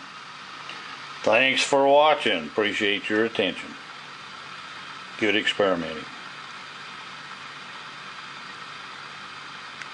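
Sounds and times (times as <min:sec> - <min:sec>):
pulse motor whirring hum: 0:00.0 - 0:09.9.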